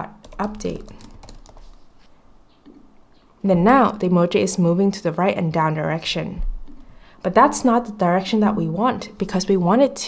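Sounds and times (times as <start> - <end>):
quiet keyboard keystrokes: 0.2 - 1.8.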